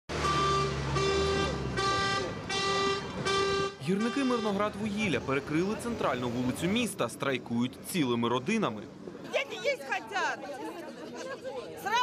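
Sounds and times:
vehicle horn blasts: 0:00.1 - 0:04.7.

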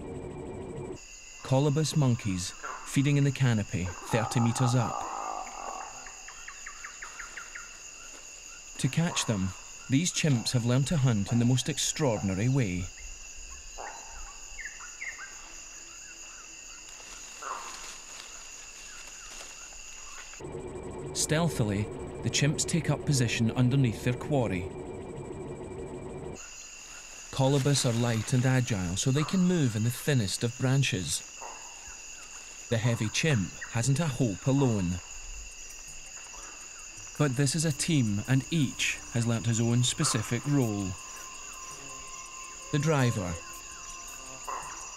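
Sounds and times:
insects droning: 0:00.0 - 0:44.9
low full hum: 0:20.4 - 0:26.4.

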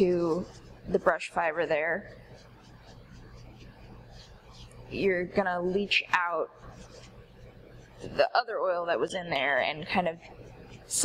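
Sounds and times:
paint brush swishing in oil: 0:00.0 - 0:08.3
low steady hum: 0:00.0 - 0:11.0.

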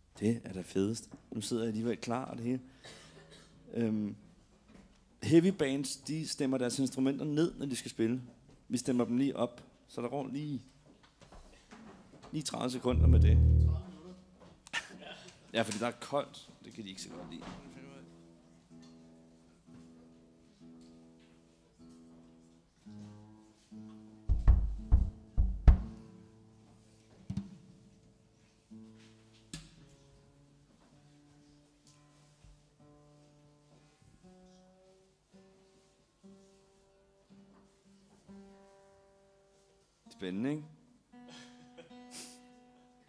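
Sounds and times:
guitar strings plucked for tuning: 0:12.9 - 0:13.9.

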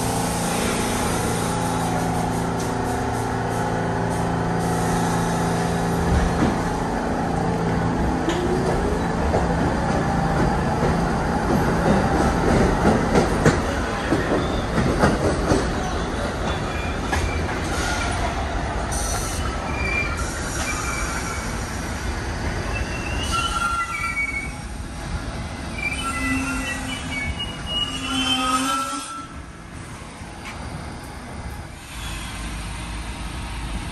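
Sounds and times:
train wheels rumbling on rail: 0:00.0 - 0:33.9
clacks over rail joints: 0:07.6 - 0:17.7
wheel squeals: 0:22.4 - 0:24.7, 0:25.7 - 0:29.3.

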